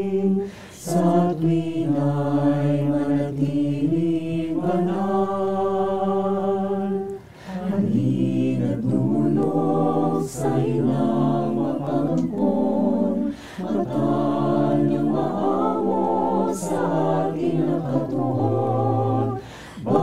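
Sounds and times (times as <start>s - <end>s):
choir singing in harmony: 0.0s - 20.0s.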